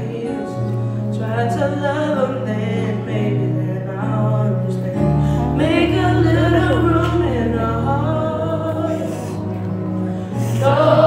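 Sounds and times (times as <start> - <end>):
youth choir singing: 10.3 - 11.0.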